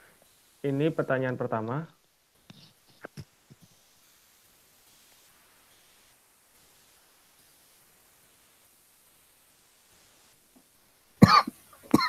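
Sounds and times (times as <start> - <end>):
man coughing: 11.2 - 12.0.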